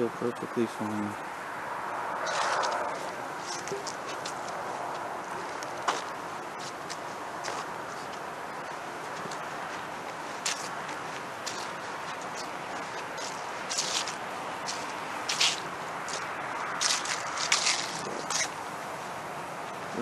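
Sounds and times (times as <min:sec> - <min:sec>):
rustles and crackles: 0:02.2 - 0:18.6.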